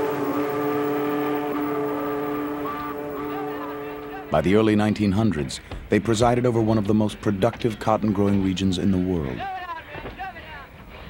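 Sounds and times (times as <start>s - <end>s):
steam whistle blowing: 0.0s - 4.4s.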